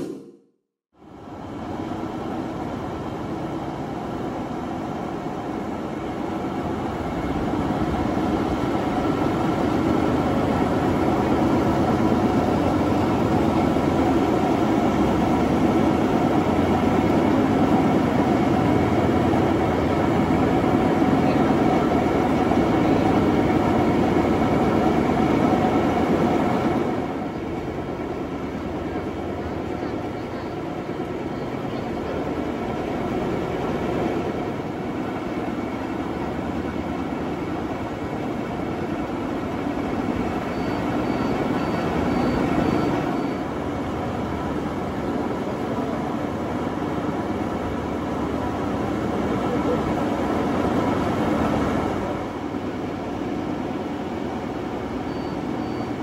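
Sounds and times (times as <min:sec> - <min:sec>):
faint mechanical whine: 0:01.0 - 0:56.0
belt conveyor rumbling: 0:01.1 - 0:56.0.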